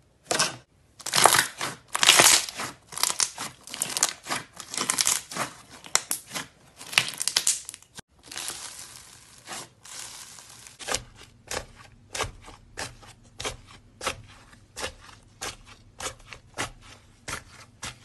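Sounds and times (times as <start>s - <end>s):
crunchy slime crackling and popping: 0.3s - 10.9s
soft steady crackle: 8.2s - 10.8s.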